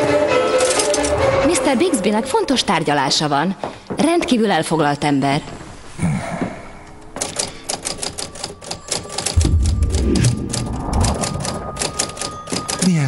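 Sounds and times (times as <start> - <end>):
typewriter keys clacking: 7.2 - 9.5, 11.4 - 13.0.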